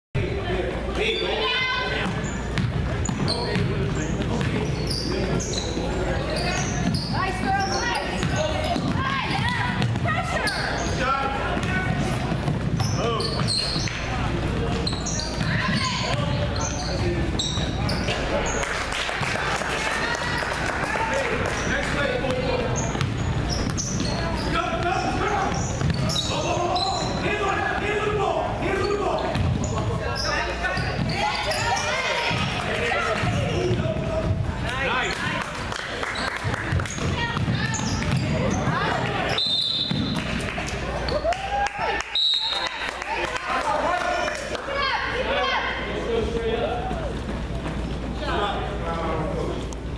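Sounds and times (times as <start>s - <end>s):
basketball bouncing on hardwood: 8.2s - 10.2s, 36.8s - 38.8s.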